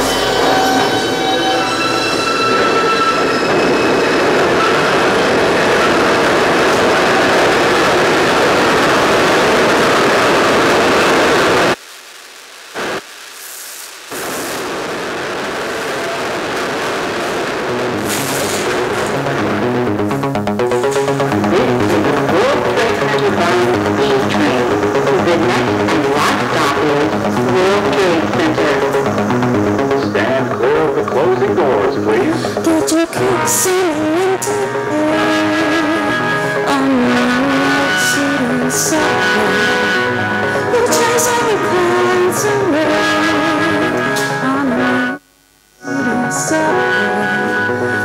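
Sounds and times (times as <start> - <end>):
electronic music with pulsing synth: 0.0 - 11.8, 14.7 - 45.2
woman singing into a microphone: 32.6 - 45.2, 45.8 - 48.0.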